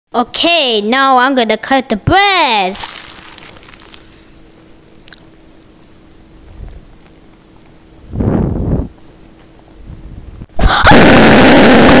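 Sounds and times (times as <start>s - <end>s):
distorted loud scream: 10.6s - 12.0s.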